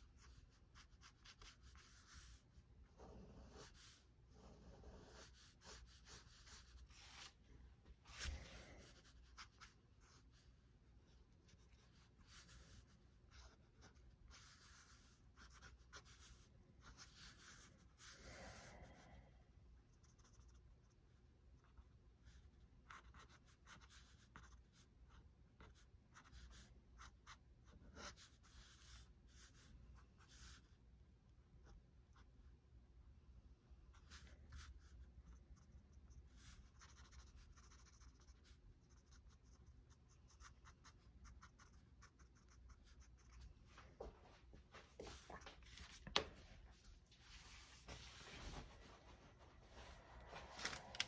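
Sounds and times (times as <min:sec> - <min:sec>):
pen scratching on paper: 0:03.0 - 0:07.4, 0:11.5 - 0:19.0, 0:19.9 - 0:21.0, 0:21.6 - 0:30.7, 0:33.9 - 0:43.5.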